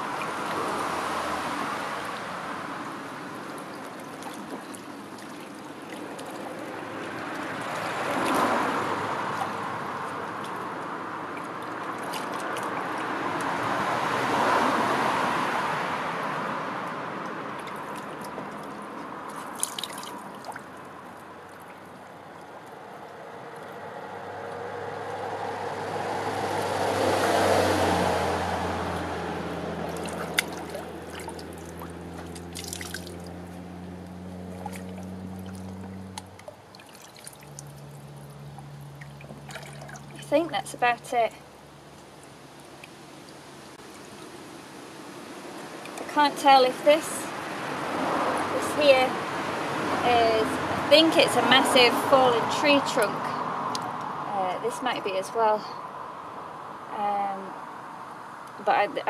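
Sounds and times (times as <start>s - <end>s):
road traffic passing: 0.0s - 59.0s
steady engine hum: 0.0s - 59.0s
water trickling and splashing: 0.0s - 59.0s.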